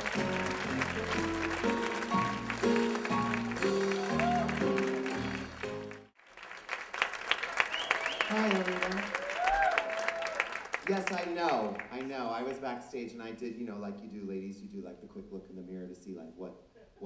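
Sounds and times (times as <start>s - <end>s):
piano-led band playing: 0.0s - 6.2s
audience applause: 0.0s - 12.6s.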